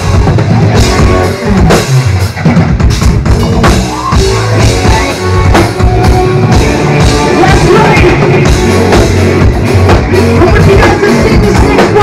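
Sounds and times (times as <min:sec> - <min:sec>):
drum kit: 0:00.0 - 0:12.0
rock band playing live: 0:00.0 - 0:12.0.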